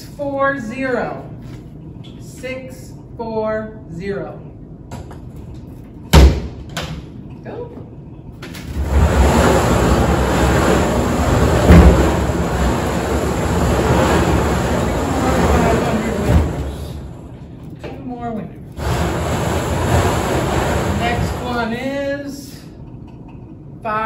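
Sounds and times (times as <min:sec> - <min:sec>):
loud knock: 0:06.1 - 0:06.6, 0:09.2 - 0:13.6.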